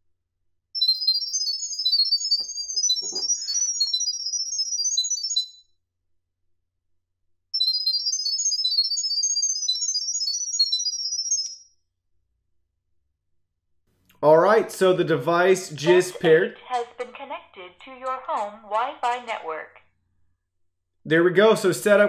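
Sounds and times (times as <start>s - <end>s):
high-pitched electronic tones: 0.8s - 5.6s.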